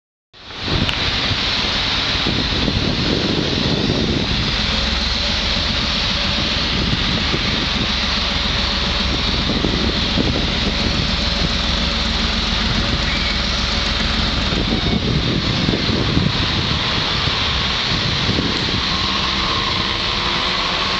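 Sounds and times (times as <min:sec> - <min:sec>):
diesel locomotive engine running: 0:00.4 - 0:20.9
steady high hiss: 0:00.4 - 0:20.9.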